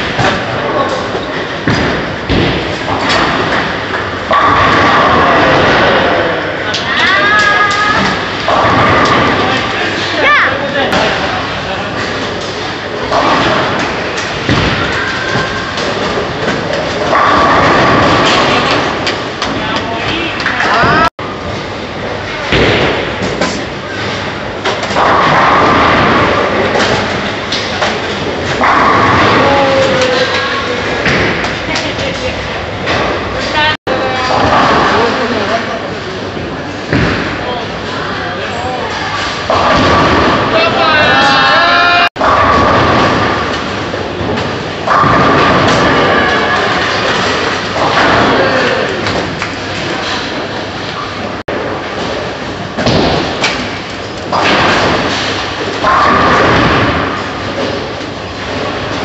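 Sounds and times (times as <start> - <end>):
bowling balls rolling: 0.0 - 59.0
steady hall noise: 0.0 - 59.0.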